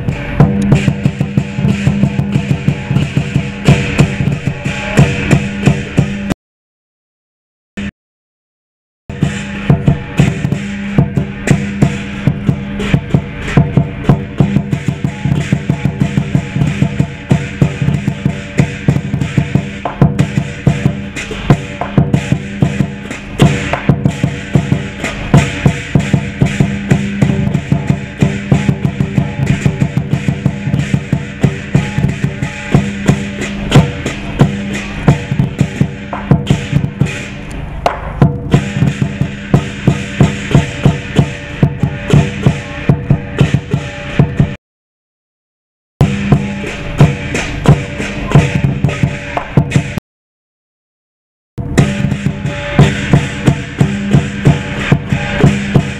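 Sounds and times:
hand cymbals clashing: 0:00.0 - 0:06.3, 0:09.1 - 0:44.5, 0:46.0 - 0:49.9, 0:51.8 - 0:55.9
large drum beaten fast: 0:00.0 - 0:06.4, 0:09.1 - 0:44.6, 0:46.0 - 0:50.0, 0:51.6 - 0:55.9.

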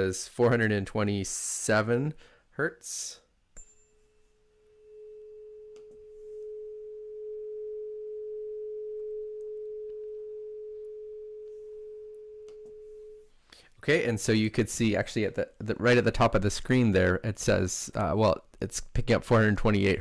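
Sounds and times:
tuning fork ringing: 0:03.6 - 0:13.3.

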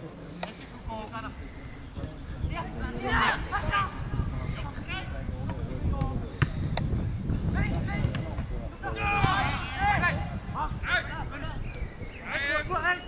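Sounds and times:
wind rumble on microphone: 0:01.6 - 0:13.0
players shouting: 0:08.8 - 0:11.5.

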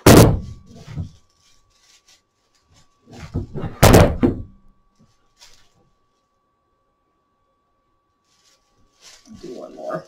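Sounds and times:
loud thump: 0:00.0 - 0:01.1, 0:03.3 - 0:04.6
broom straws rustling: 0:00.4 - 0:03.5, 0:04.9 - 0:06.4, 0:08.1 - 0:10.0.

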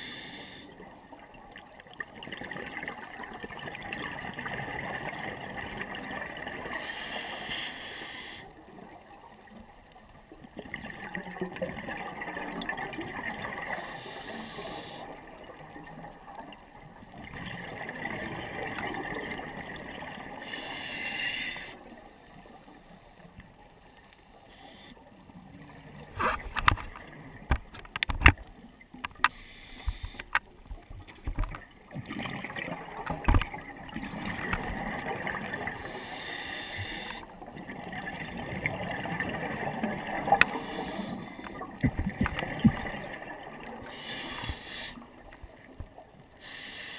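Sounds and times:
regulator inhale: 0:00.0 - 0:00.8, 0:06.8 - 0:08.6, 0:13.7 - 0:15.2, 0:20.4 - 0:21.8, 0:24.4 - 0:25.0, 0:29.2 - 0:30.4, 0:35.8 - 0:37.3, 0:40.4 - 0:41.8, 0:43.8 - 0:45.2, 0:46.4 - 0:46.9.

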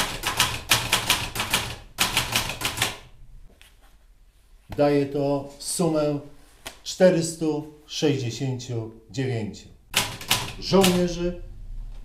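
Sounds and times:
typewriter key strikes: 0:10.0 - 0:11.0.

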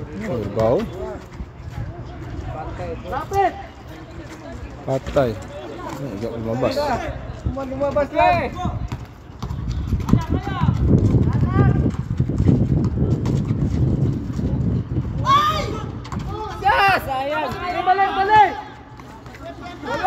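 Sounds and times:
players shouting: 0:15.2 - 0:20.0.

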